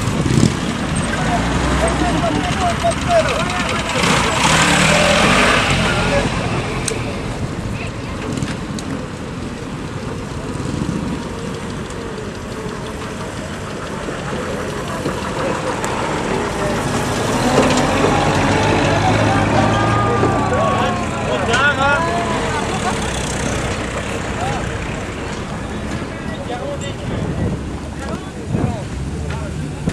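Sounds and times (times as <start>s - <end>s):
truck engine driving past: 0.0s - 29.9s
voices calling out: 0.0s - 29.9s.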